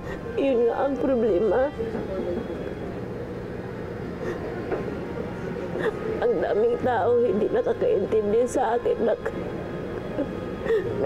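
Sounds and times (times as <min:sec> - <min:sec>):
woman sobbing: 0:00.0 - 0:01.7, 0:04.2 - 0:04.6, 0:05.8 - 0:08.0, 0:10.0 - 0:11.0.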